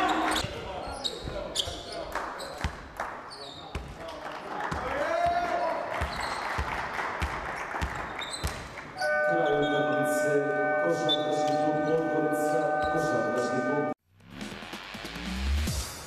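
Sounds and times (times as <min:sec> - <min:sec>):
players' voices in a hall: 0:00.0 - 0:06.2, 0:09.0 - 0:14.0
electronic buzzer horn: 0:09.0 - 0:14.0.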